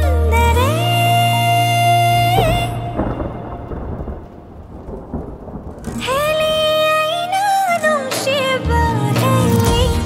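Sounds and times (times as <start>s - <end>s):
thunder rumbling: 2.2s - 7.8s.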